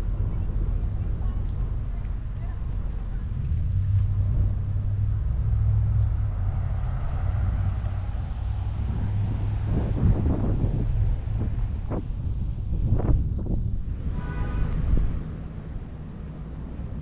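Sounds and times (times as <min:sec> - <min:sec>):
road traffic passing: 0:00.0 - 0:17.0
wind rumble on microphone: 0:00.0 - 0:17.0.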